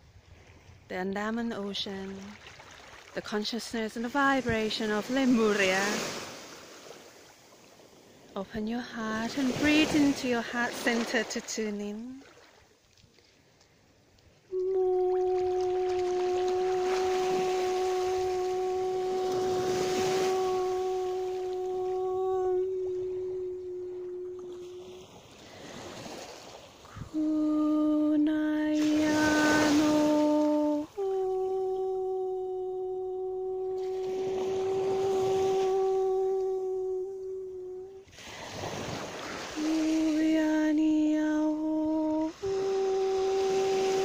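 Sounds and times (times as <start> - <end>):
sea water washing: 1.7 - 44.0
steady held tone: 14.5 - 25.0
voice toning a sustained note: 14.5 - 25.1, 27.0 - 38.1, 39.5 - 44.0.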